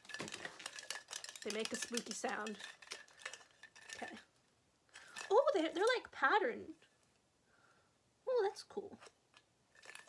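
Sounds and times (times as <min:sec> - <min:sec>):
plastic string lights clattering: 0:00.0 - 0:07.2, 0:08.9 - 0:10.0.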